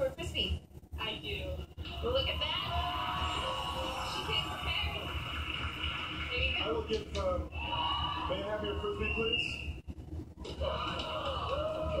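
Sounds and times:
drawn-out vocal sounds on television: 0.0s - 12.0s.

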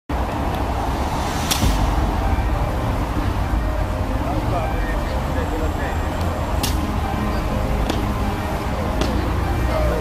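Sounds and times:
low outdoor rumble: 0.1s - 10.0s.

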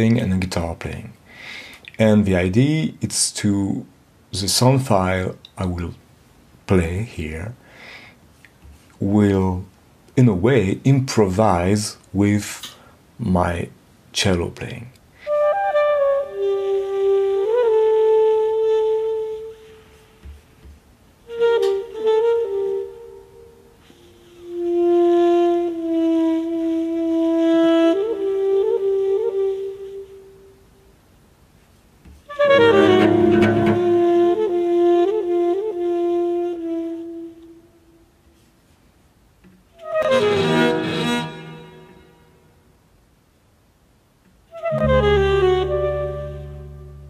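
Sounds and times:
low sound under saxophone: 15.2s - 20.4s, 21.2s - 30.5s, 32.2s - 38.6s, 44.5s - 47.0s
saxophone playing long notes: 15.3s - 19.8s, 21.3s - 30.4s, 32.3s - 37.9s, 39.8s - 42.2s, 44.5s - 47.0s.

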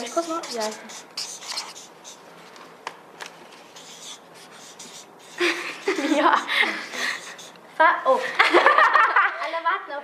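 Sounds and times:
pens scratching on paper: 0.0s - 7.6s.

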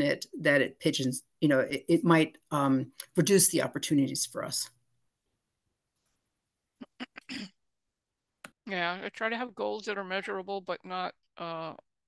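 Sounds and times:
person making throat and mouth noises: 6.8s - 7.6s.

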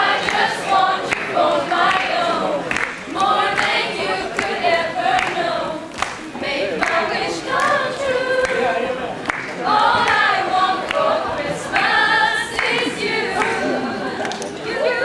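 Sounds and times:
group of young voices singing: 0.0s - 15.0s.

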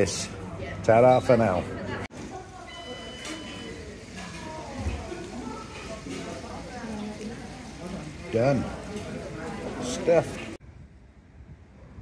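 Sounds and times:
murmur of indistinct chatter: 0.0s - 10.6s.

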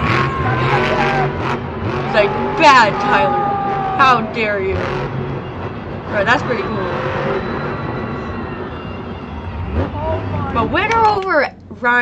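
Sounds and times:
monster truck engine rumble: 0.0s - 12.0s.

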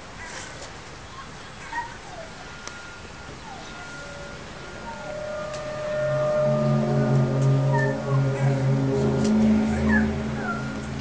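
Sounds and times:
faint bird chirps: 1.1s - 10.9s
loud low drone: 3.4s - 11.0s.

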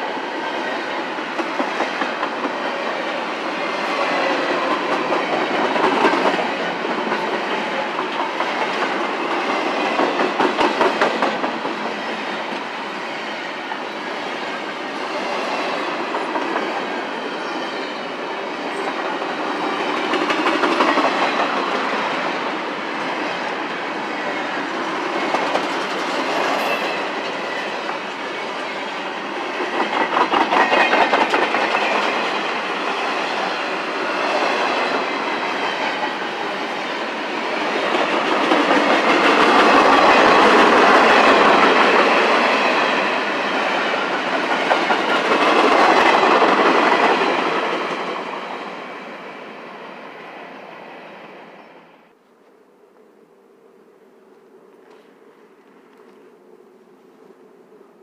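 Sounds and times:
train wheels rumbling and clacking: 0.0s - 49.0s.

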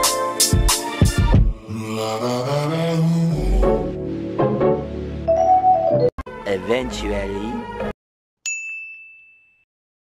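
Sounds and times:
voice drawing out a word: 1.7s - 3.8s
bright ding: 8.5s - 9.7s.

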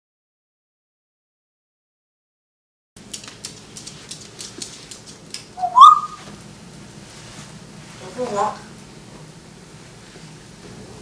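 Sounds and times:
parrot claws clicking on floor: 3.0s - 6.0s
parrot whistle rising in pitch: 5.6s - 6.3s.

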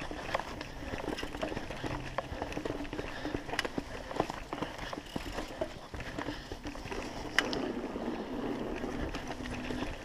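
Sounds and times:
bike tyres rattling over boards: 0.0s - 10.0s.

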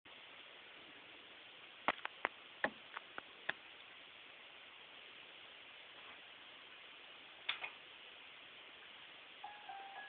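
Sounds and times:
faint hiss: 0.1s - 10.0s.

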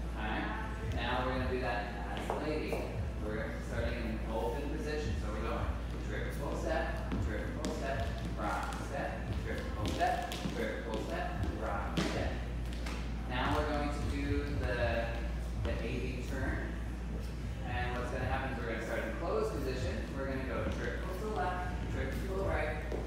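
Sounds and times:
low hum: 0.0s - 23.0s
dance shoes tapping on wood: 7.1s - 13.8s.

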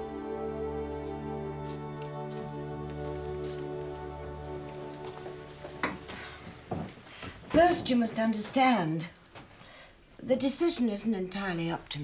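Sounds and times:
woman speaking: 7.5s - 9.2s, 10.2s - 12.0s.

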